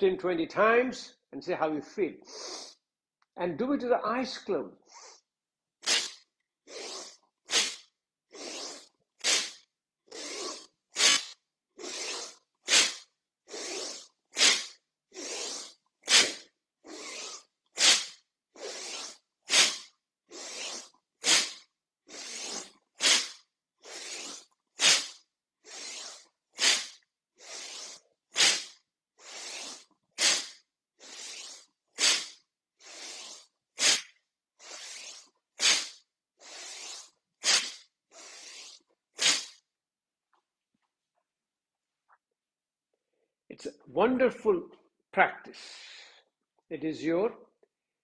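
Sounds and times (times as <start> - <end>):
man breathing forcefully through nose: 4.9 - 39.6, 45.6 - 46.2.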